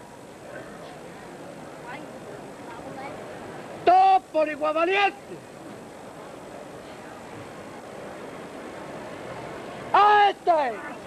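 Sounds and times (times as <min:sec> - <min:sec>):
crowd murmur: 0:00.0 - 0:11.0
man shouting a command: 0:03.8 - 0:05.2, 0:09.9 - 0:10.8.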